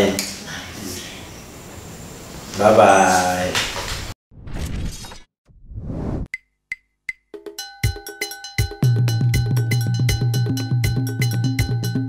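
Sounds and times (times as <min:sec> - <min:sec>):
crashing rushing whoosh effects: 0:04.3 - 0:06.3.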